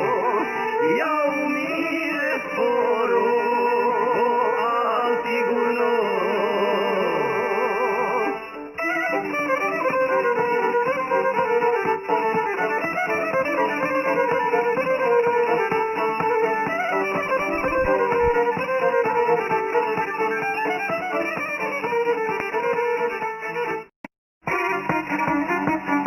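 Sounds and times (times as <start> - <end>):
plucked string accompaniment: 0.0 - 26.0
violin melody: 0.0 - 26.0.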